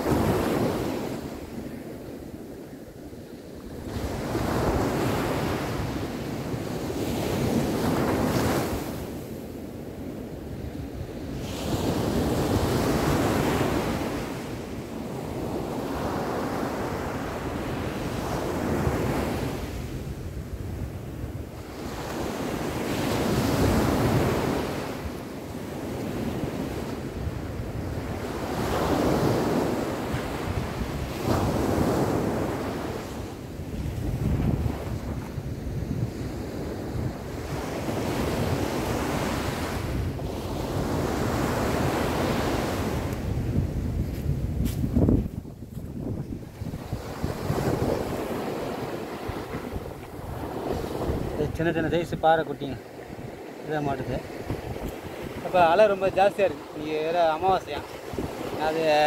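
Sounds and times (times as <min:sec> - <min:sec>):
ocean surf breaking on beach: 0:00.0 - 0:59.0
wind rumbling on microphone: 0:00.0 - 0:59.0.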